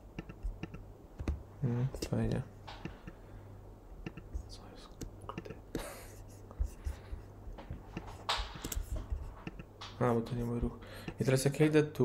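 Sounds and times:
steady low hum: 0.0 - 12.0
man whispering: 4.4 - 5.7
man breathing: 10.8 - 11.2.

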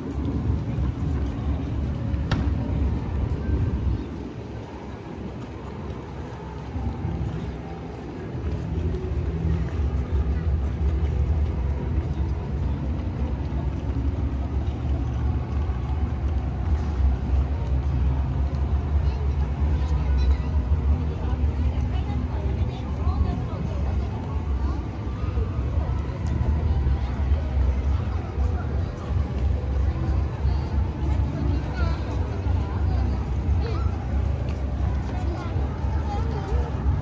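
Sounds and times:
faint voices: 0.0 - 37.0
low city rumble: 0.0 - 37.0.

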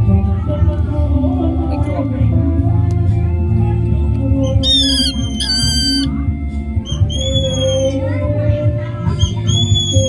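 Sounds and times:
background music: 0.0 - 10.0
bird squawking: 4.5 - 6.1.

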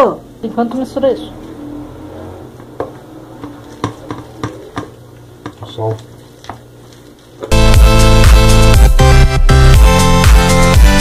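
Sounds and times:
spoon mixing mashed potato: 2.7 - 7.5.

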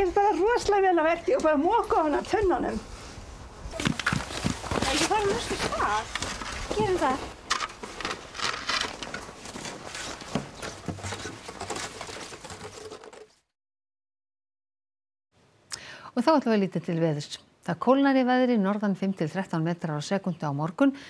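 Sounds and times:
footsteps on snow: 3.8 - 8.1
snow shovels scraping: 3.8 - 13.2
voices: 4.7 - 7.3.

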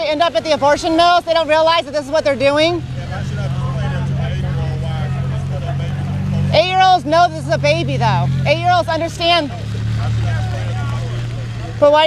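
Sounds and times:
car engines humming: 0.0 - 12.0
faint voices: 0.0 - 12.0.

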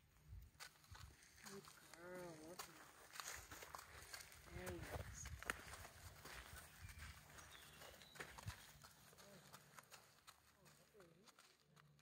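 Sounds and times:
horse hooves on gravel: 0.0 - 12.0.

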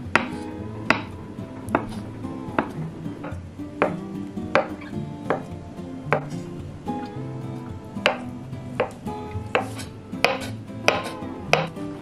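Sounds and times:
soft background music: 0.0 - 12.0
knife chopping on wooden board: 0.1 - 1.1, 1.7 - 2.0, 2.6 - 5.5, 6.1 - 6.4, 8.0 - 11.8.

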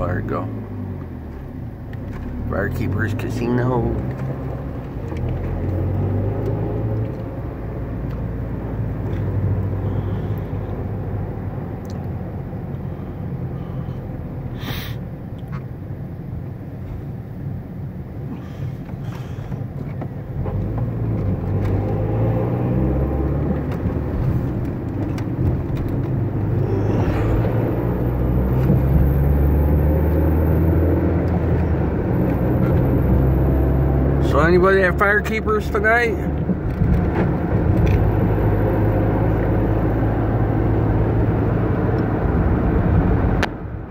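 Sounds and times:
car engine: 0.0 - 43.9
road noise inside car: 0.0 - 43.9.

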